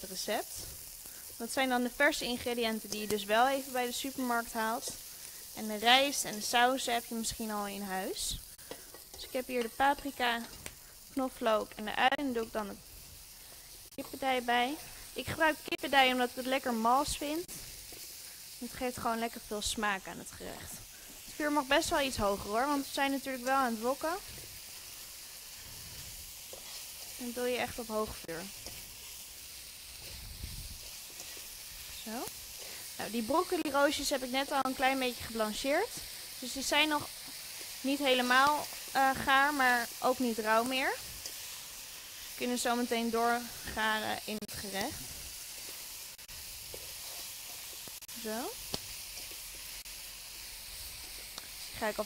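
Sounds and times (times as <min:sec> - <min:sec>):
food sizzling in oil: 0:00.0 - 0:52.0.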